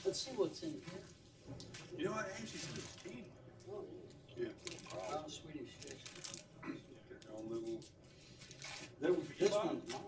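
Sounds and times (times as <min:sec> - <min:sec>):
indistinct conversation: 0:00.0 - 0:10.0
rustling and handling noises: 0:04.6 - 0:06.5, 0:07.2 - 0:10.0.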